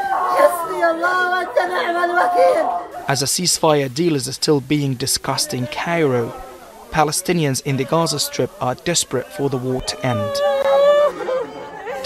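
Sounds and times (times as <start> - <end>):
woman wailing in grief: 9.8 - 12.0.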